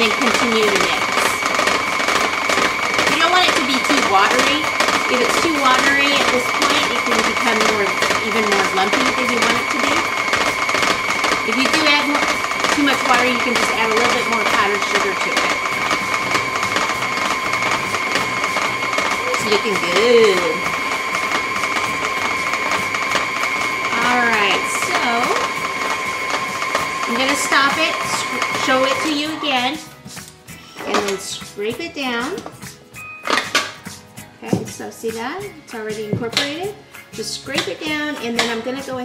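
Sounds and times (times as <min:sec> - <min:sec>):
stand mixer motor whine: 0:00.0 - 0:31.6, 0:35.9 - 0:39.0.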